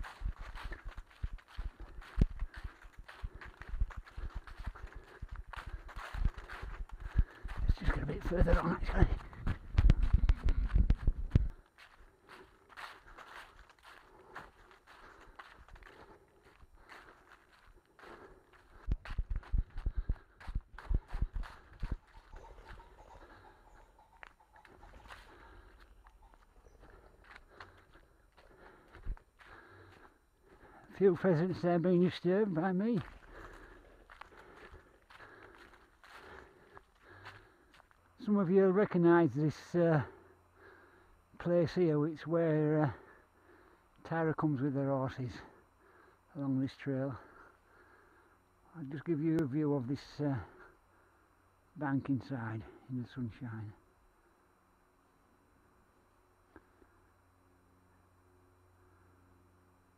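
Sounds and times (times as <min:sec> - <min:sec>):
low microphone rumble: 0:00.0 - 0:11.6
running footsteps on leaves: 0:00.0 - 0:50.8.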